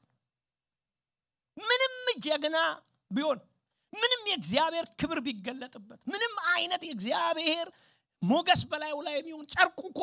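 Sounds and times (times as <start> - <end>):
man's high drawn-out voice: 1.6 - 3.4
man speaking: 1.6 - 10.0.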